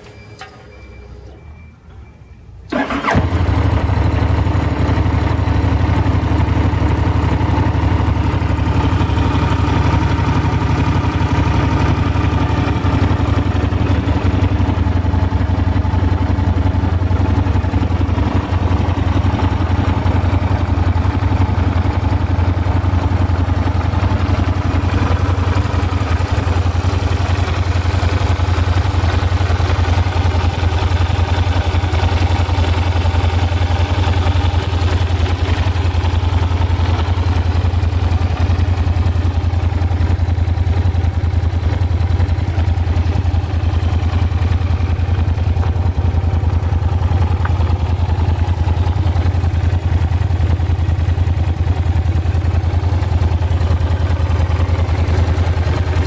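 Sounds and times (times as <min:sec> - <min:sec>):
motorcycle engine idling: 0:02.7 - 0:56.0.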